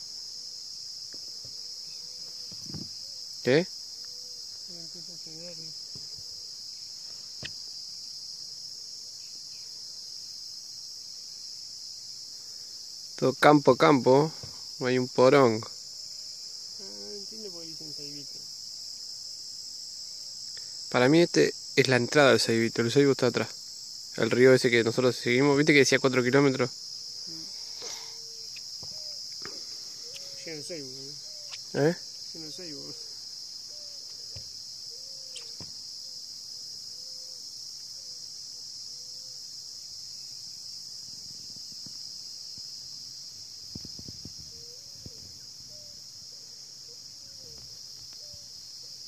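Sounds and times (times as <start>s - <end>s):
insects chorus drone: 0.0s - 49.0s.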